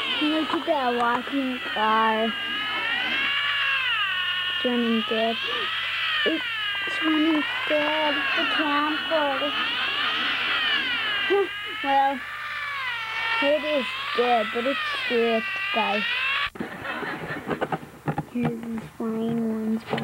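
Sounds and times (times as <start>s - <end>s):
voice fragments: 0.0s - 16.2s.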